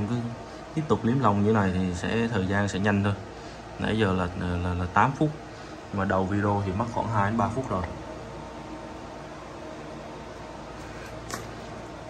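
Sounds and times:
fans blowing steadily: 0:00.0 - 0:12.0.

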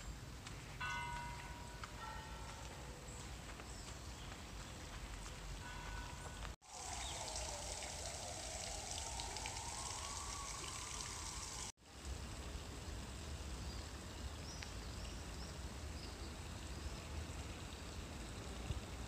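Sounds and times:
outdoor ambience: 0:00.0 - 0:19.0
fountain water splashing: 0:06.6 - 0:19.0.

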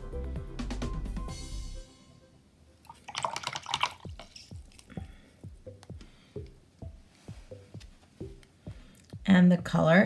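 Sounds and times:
water drops plinking: 0:02.8 - 0:04.9
water swishing and splashing: 0:02.9 - 0:04.9.

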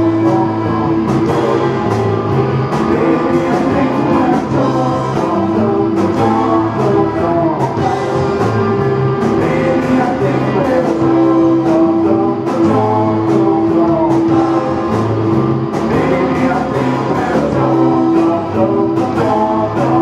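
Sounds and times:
drum beats: 0:00.0 - 0:20.0
live rock band playing: 0:00.0 - 0:20.0.

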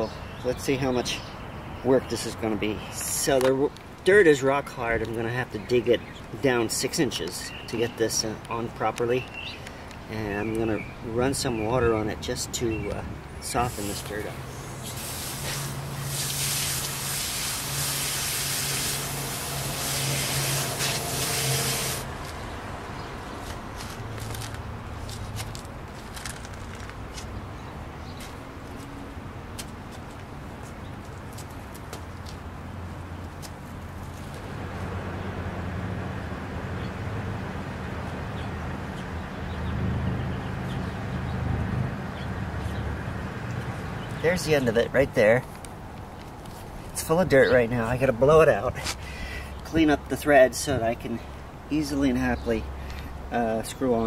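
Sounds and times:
garden hose spraying water: 0:13.5 - 0:22.4
tool scraping wet soil: 0:13.6 - 0:22.4.

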